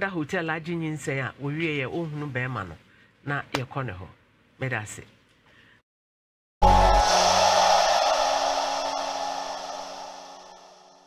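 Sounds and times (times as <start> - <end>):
hissy shimmer: 6.6 - 11.0
low held tones: 6.6 - 11.0.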